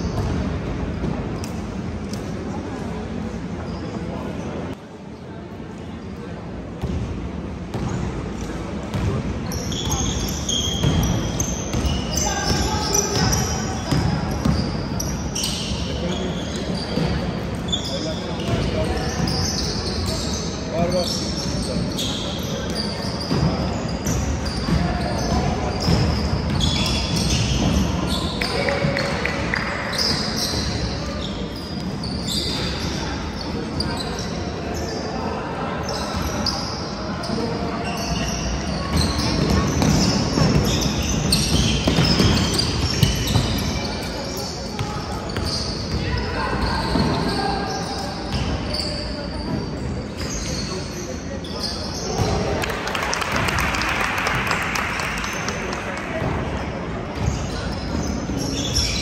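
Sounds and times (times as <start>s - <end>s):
sneakers squeaking on court: 0.0s - 1.8s, 6.8s - 7.1s, 7.7s - 35.1s, 35.8s - 52.7s, 56.2s - 59.0s.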